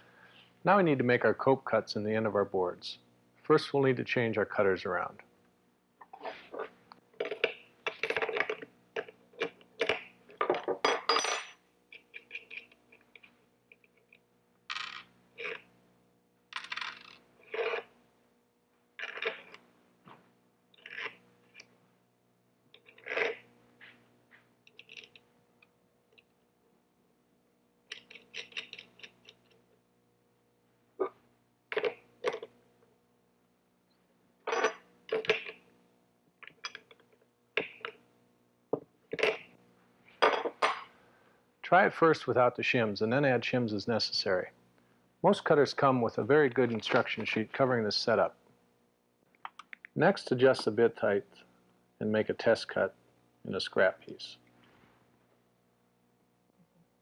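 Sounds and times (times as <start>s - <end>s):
metal parts clinking: 16.5s - 17.8s, 24.7s - 25.2s, 27.9s - 29.6s, 34.5s - 35.6s, 36.4s - 37.0s.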